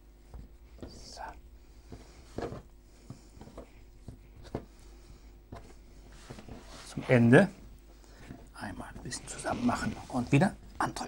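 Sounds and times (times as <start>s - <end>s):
hands kneading dough on wood: 0.0s - 10.7s.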